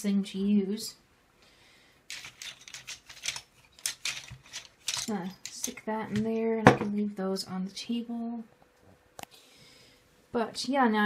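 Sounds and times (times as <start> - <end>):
pencils clicking and rattling: 2.1 - 6.3.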